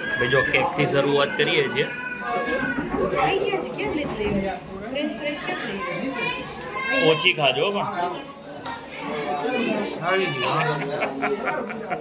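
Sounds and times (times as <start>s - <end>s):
chatter of children and adults: 0.0s - 12.0s.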